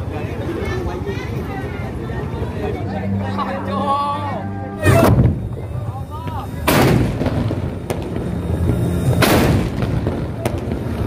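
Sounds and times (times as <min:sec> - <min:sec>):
distant bangs: 0:06.6 - 0:11.0
cannon booms: 0:06.7 - 0:08.1, 0:09.2 - 0:10.8.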